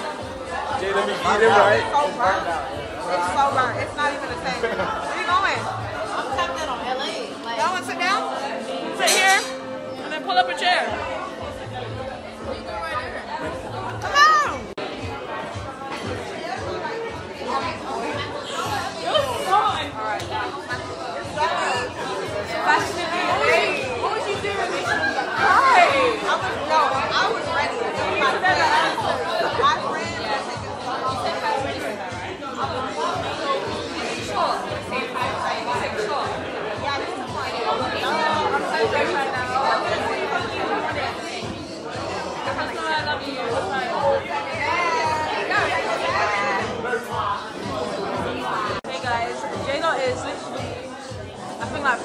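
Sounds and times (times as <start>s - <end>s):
people talking: 0.0s - 52.0s.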